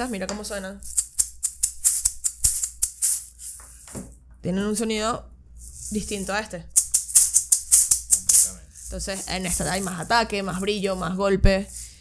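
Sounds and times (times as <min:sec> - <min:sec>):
maracas shaking: 0:00.0 - 0:03.9, 0:05.6 - 0:12.0.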